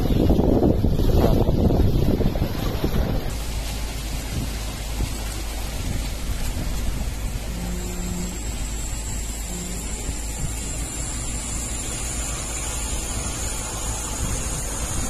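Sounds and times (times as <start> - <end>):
low hum: 0.0 - 15.0
wind buffeting microphone: 0.0 - 15.0
outdoor hiss: 3.3 - 15.0
short low tone: 7.4 - 12.7.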